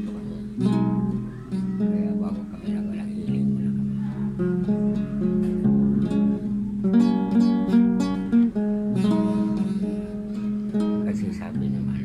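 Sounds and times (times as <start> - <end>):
acoustic guitar plucked notes: 0.0 - 12.0.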